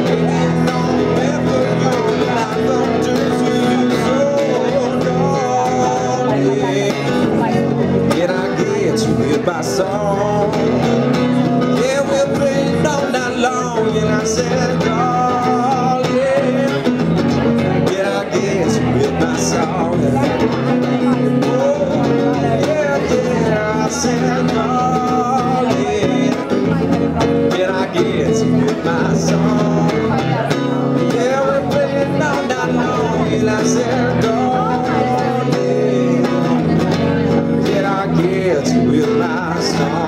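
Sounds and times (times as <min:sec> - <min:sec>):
electric guitar strumming: 0:00.0 - 0:40.0
man singing: 0:00.0 - 0:40.0.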